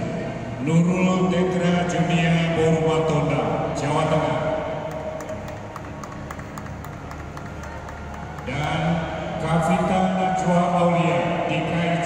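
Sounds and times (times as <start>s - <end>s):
audience hand clapping: 4.9s - 8.8s.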